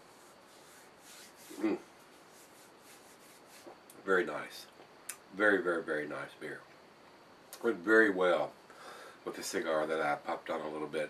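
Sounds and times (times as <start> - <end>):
hands rubbing together: 0.0 - 3.9
person murmuring mm: 1.5 - 1.9.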